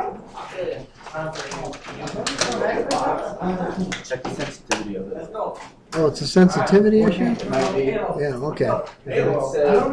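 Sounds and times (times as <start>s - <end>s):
people talking indistinctly: 0.0s - 9.9s.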